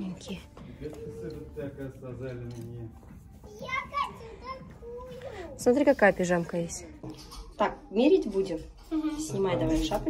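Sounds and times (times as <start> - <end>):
young child's voice: 3.5 - 5.6.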